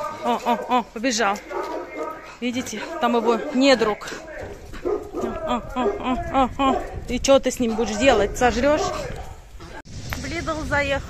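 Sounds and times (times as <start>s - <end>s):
dog barking: 0.0s - 9.5s.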